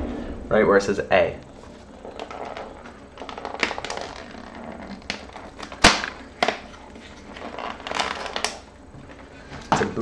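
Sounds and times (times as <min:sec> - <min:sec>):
cardboard snapping: 0:05.0 - 0:06.8.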